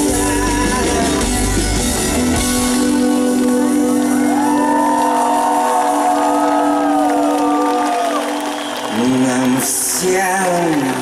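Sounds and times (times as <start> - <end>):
live rock band playing: 0.0 - 10.2
crowd whooping and cheering: 3.3 - 11.0.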